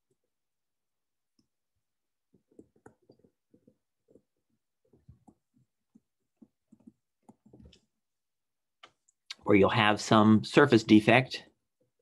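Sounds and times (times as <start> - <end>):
stylus tapping on tablet screen: 2.3 - 7.8.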